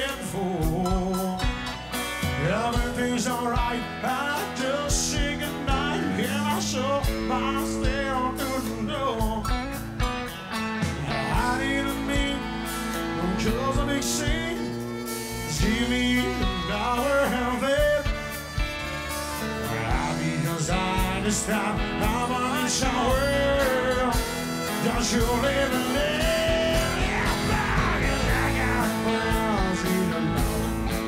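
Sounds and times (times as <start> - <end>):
country band playing: 0.0 - 31.0
steady drum beat: 0.0 - 31.0
twangy electric guitars: 0.0 - 31.0
fiddle: 10.2 - 31.0.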